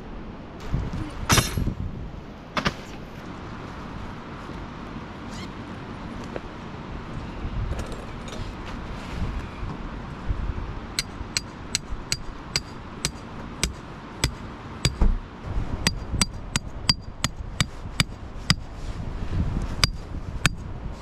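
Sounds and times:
hammer striking metal tent peg: 11.0s - 15.2s, 15.9s - 18.7s, 19.8s - 20.6s
dull thump: 13.6s - 15.2s.

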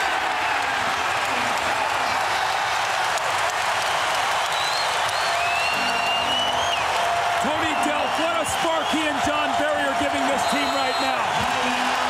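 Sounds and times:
crowd cheering and applauding: 0.0s - 12.0s
high whistle: 4.5s - 7.0s, 10.3s - 11.4s.

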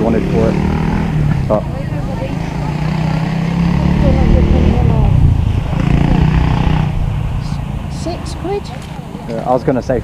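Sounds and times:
people talking: 0.0s - 0.6s, 1.5s - 6.2s, 7.4s - 10.0s
engine humming: 0.0s - 10.0s.

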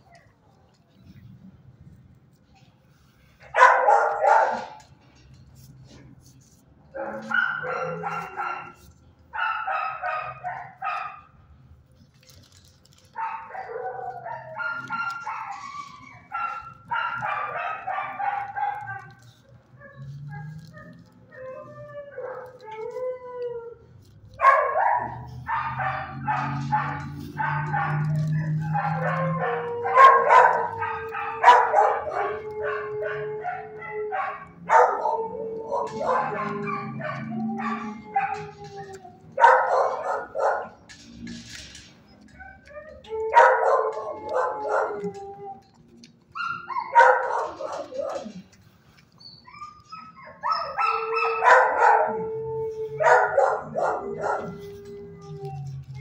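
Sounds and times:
dogs barking and howling: 3.4s - 11.3s, 12.0s - 56.0s
dogs whining: 6.9s - 11.2s, 13.2s - 56.0s.

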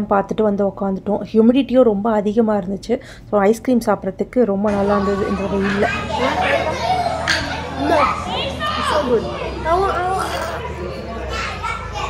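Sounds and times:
children's chatter: 4.7s - 12.0s.

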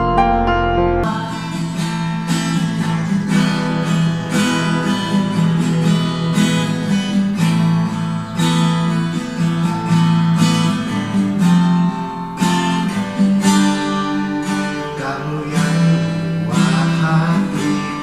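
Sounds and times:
classical guitar strummed: 0.0s - 18.0s.

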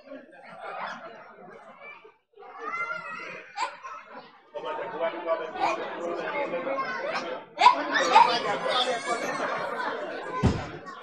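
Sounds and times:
laughter: 0.0s - 1.8s, 2.6s - 5.0s
people chattering: 0.0s - 11.0s.

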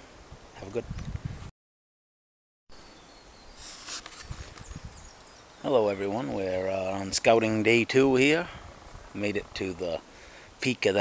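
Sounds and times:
faint woodland background: 0.0s - 1.5s, 2.7s - 11.0s
camera handling rustle: 3.6s - 4.8s.

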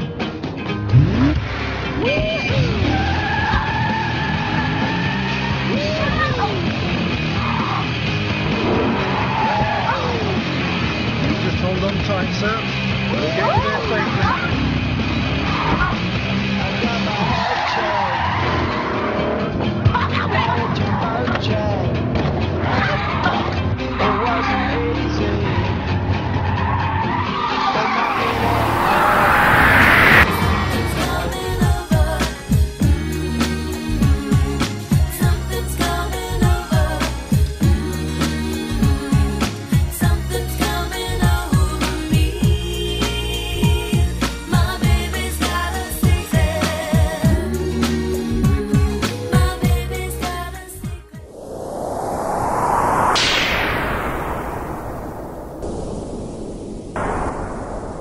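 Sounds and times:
music: 0.0s - 28.2s, 30.2s - 51.3s
car engine revving: 27.9s - 32.3s.

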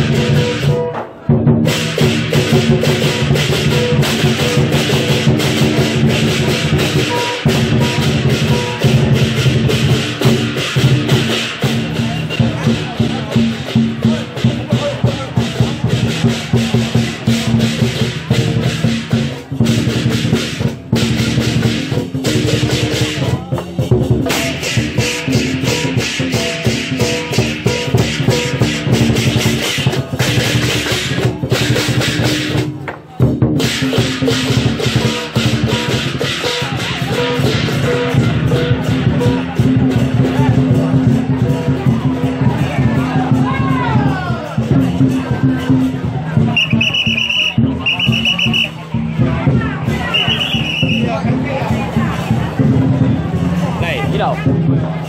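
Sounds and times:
clashing cymbals: 0.0s - 43.7s
large drum beating: 0.0s - 55.0s.

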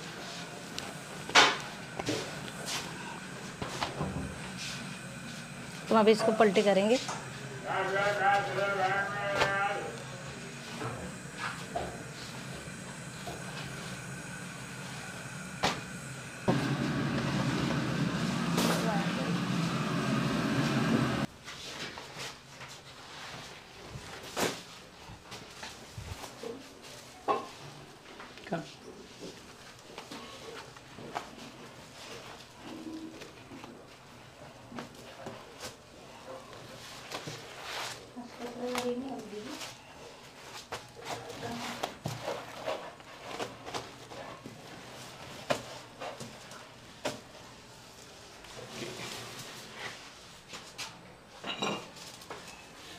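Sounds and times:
background voices: 0.0s - 21.3s
kitchen noise: 51.4s - 52.7s.

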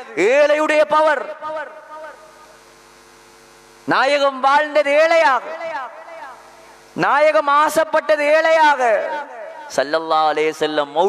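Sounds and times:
electrical mains hum: 0.0s - 11.0s
man speaking: 3.9s - 11.0s.

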